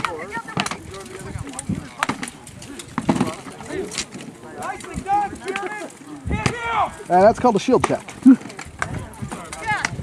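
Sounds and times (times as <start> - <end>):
voices shouting: 2.7 - 7.8
weapons striking shields: 3.0 - 3.6.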